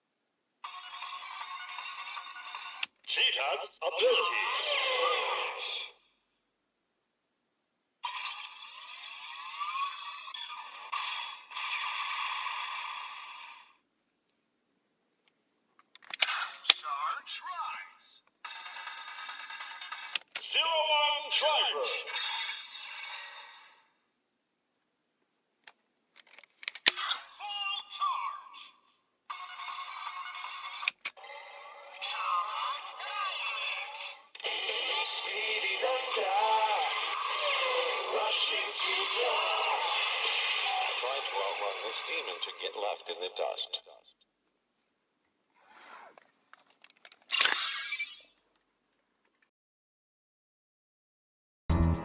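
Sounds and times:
toy plastic clicks: 0:15.8 - 0:16.9, 0:20.0 - 0:20.5, 0:26.2 - 0:27.1, 0:30.6 - 0:31.2, 0:46.6 - 0:48.2.

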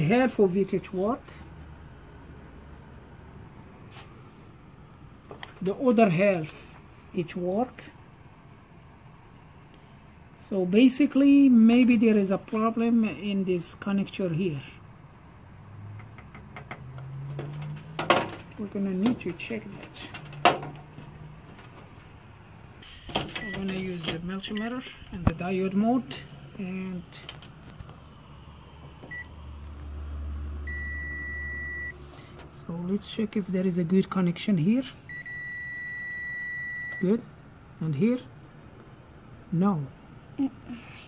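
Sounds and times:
multimeter continuity beep: 0:23.3 - 0:24.9, 0:29.1 - 0:29.4, 0:30.7 - 0:32.0, 0:35.1 - 0:37.1.

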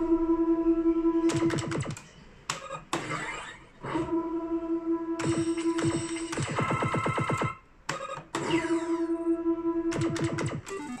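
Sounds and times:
electronic hit with held tone: 0:00.0 - 0:02.0.

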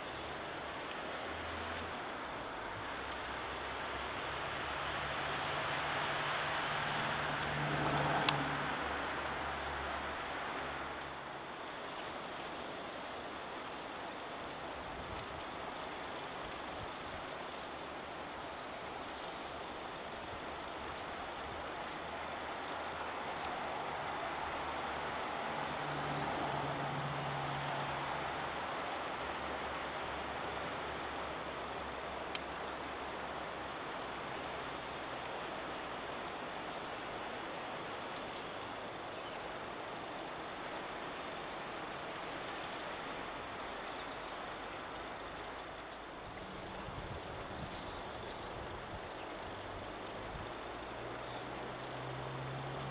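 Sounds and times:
woodland hiss: 0:00.0 - 0:52.9
small birds chirping: 0:17.9 - 0:34.8, 0:36.6 - 0:46.5.

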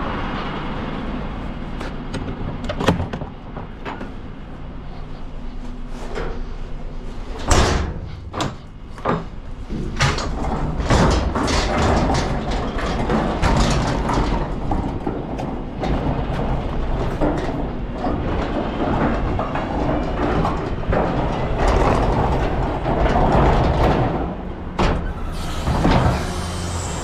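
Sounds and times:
wheelie bin rattling over paving: 0:07.2 - 0:27.0.

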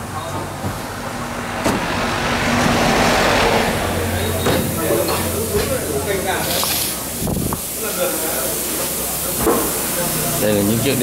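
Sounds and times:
people talking: 0:00.0 - 0:00.9, 0:03.3 - 0:11.0
short burst of hiss: 0:06.4 - 0:10.3.

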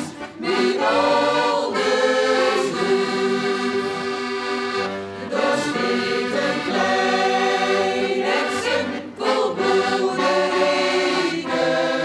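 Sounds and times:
button accordions playing folk tune: 0:00.0 - 0:12.0.

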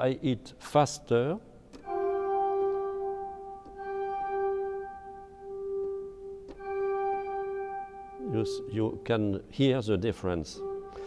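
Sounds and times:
pipe organ sustained note: 0:01.8 - 0:11.0.

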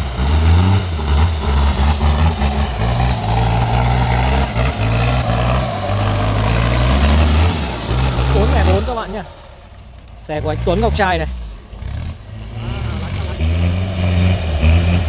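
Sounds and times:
off-road engine revving under load: 0:00.0 - 0:15.0.

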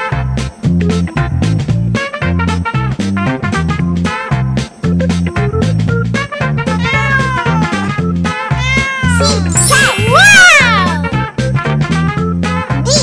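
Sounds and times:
upbeat music with bass line: 0:00.0 - 0:13.0
cat meowing: 0:06.8 - 0:11.1.

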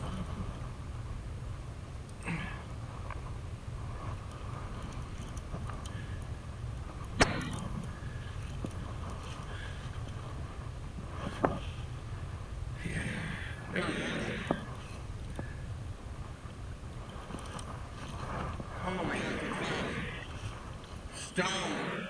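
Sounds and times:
low wind rumble: 0:00.0 - 0:22.0.

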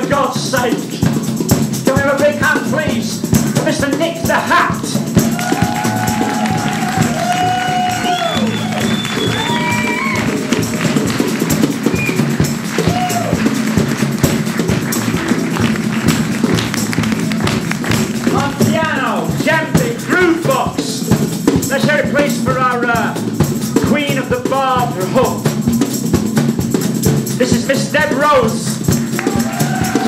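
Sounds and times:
live band music: 0:00.0 - 0:30.0
tambourine shaking: 0:00.0 - 0:30.0.

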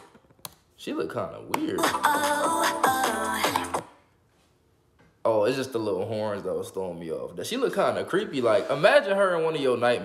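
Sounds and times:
man speaking: 0:00.8 - 0:01.9, 0:05.2 - 0:10.0
pop music: 0:01.6 - 0:04.0.

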